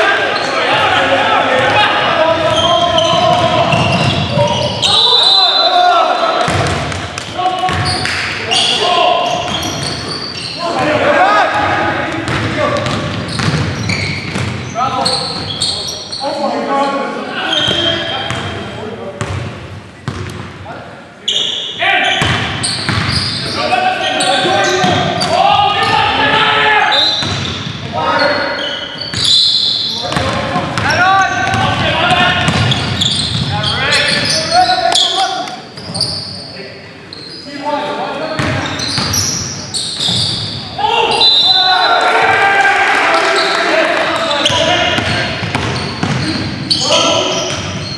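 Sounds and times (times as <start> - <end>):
players calling out: 0.0 - 18.8, 21.2 - 47.9
sneakers squeaking: 0.1 - 20.6, 21.2 - 42.1, 43.1 - 47.9
basketball bouncing on hardwood: 45.0 - 46.2.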